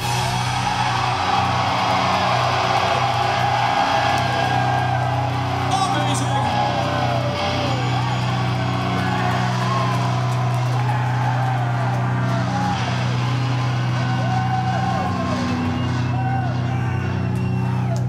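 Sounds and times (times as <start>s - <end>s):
live rock band low drone: 0.0s - 18.0s.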